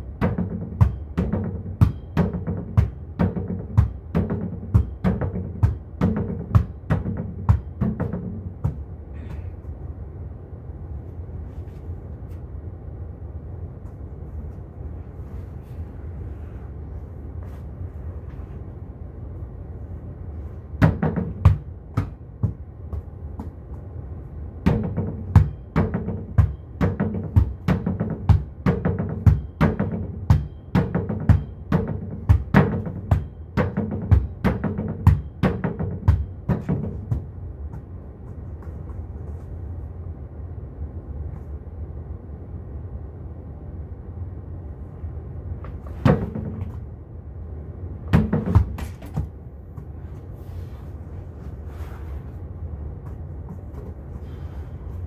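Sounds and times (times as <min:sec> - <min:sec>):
steady low hum: 0:00.0 - 0:55.0
volleyball hitting wooden board: 0:00.2 - 0:08.9, 0:20.8 - 0:23.6, 0:24.6 - 0:37.3, 0:45.8 - 0:46.8, 0:48.1 - 0:49.4.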